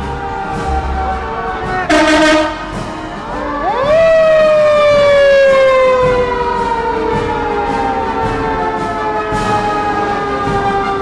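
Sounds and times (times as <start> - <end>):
fire truck siren winding: 3.4 - 11.0.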